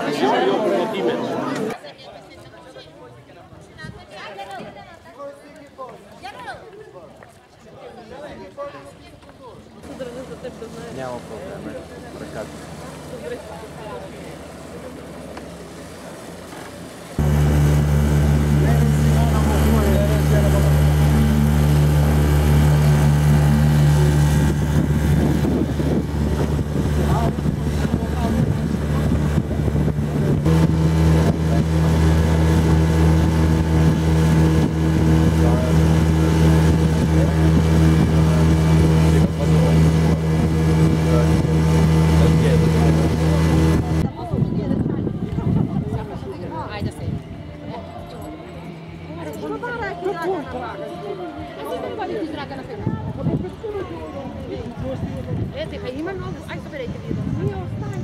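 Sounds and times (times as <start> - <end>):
outboard motor running: 9.8 - 44.6.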